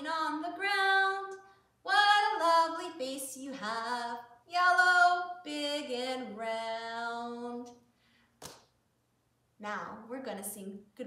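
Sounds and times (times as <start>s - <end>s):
woman singing unaccompanied: 0.0s - 7.8s.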